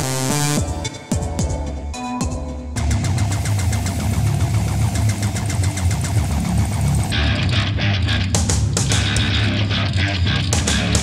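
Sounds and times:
electronic rock music: 0:00.0 - 0:11.0
engine-like rumbling pulse: 0:02.8 - 0:08.4.

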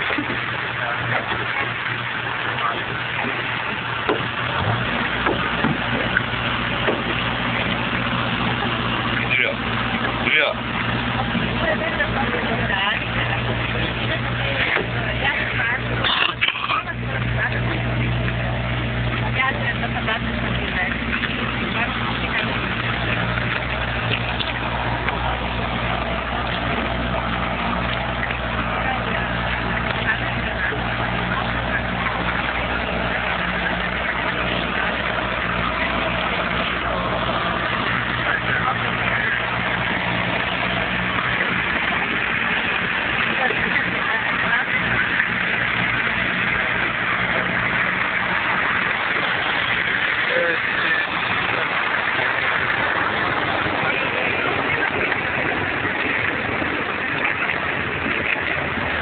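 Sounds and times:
boat engine humming: 0:00.0 - 0:59.0.

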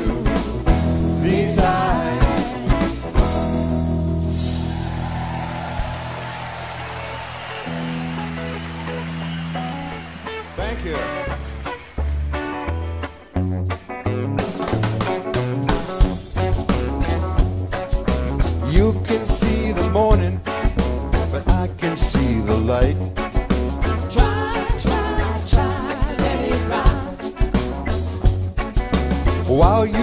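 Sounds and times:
drum kit: 0:00.0 - 0:30.0
electric guitar: 0:00.0 - 0:30.0
upright bass: 0:00.0 - 0:30.0.

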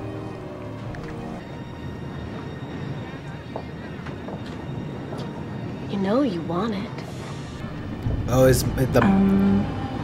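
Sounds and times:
faint indistinct voices: 0:01.0 - 0:07.6.

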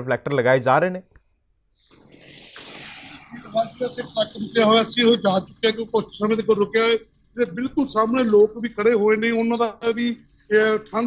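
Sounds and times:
high-pitched hiss: 0:01.8 - 0:11.0
man speaking: 0:03.3 - 0:11.0.

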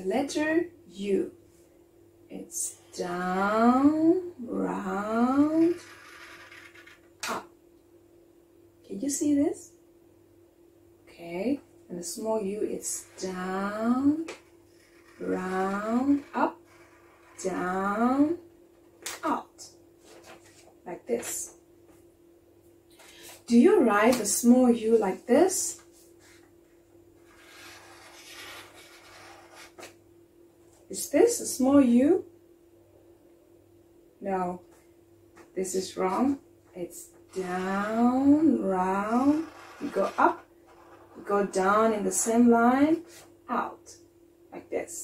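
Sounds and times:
marker scratching on paper: 0:14.3 - 0:17.7, 0:27.2 - 0:29.9, 0:39.0 - 0:41.8
person speaking: 0:15.2 - 0:16.6, 0:17.3 - 0:18.4, 0:35.6 - 0:40.5, 0:41.1 - 0:43.7.

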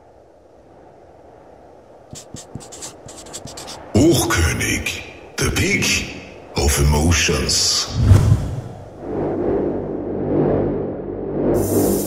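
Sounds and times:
steady low hiss: 0:00.0 - 0:09.0
scratchy drawing strokes: 0:02.1 - 0:03.9.

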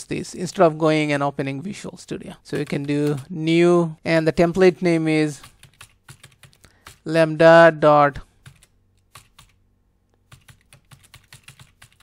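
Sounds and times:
computer keyboard typing: 0:02.5 - 0:03.3, 0:05.4 - 0:07.1, 0:08.4 - 0:09.6, 0:10.2 - 0:12.0.

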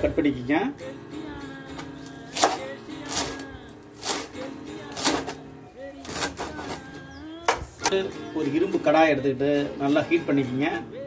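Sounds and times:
background music: 0:00.0 - 0:11.0
knife chopping on wooden board: 0:02.3 - 0:03.4.

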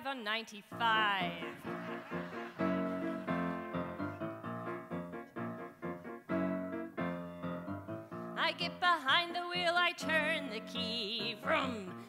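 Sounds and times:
piano chords in steady rhythm: 0:00.7 - 0:12.0.

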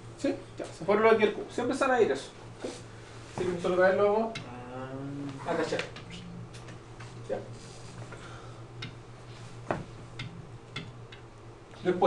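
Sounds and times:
steady low hum: 0:00.0 - 0:12.0
light sharp clicks and taps: 0:08.8 - 0:09.0, 0:09.7 - 0:11.8.

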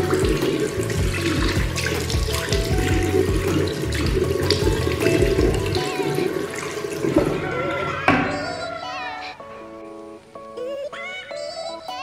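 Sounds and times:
tap water splashing into basin: 0:00.0 - 0:07.5.

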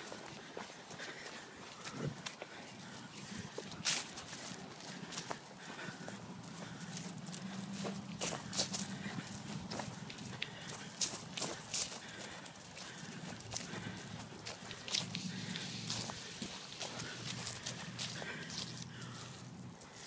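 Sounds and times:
footsteps on dry leaves: 0:00.0 - 0:20.0
low steady hum: 0:02.8 - 0:20.0.

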